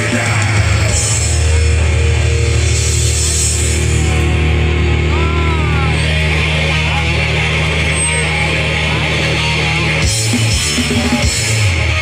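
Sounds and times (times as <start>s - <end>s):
punk rock band playing live: 0.0s - 12.0s
voices shouting: 3.5s - 11.4s.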